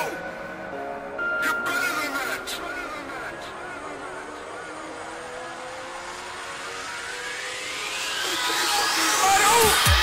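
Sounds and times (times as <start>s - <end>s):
rising whoosh effect: 4.5s - 10.0s.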